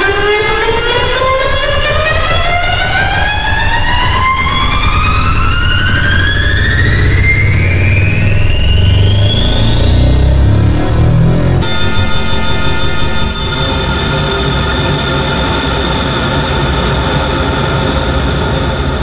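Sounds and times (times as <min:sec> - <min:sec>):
dense synthesized piano glide: 0:02.2 - 0:19.0
low bass note cluster: 0:08.1 - 0:17.6.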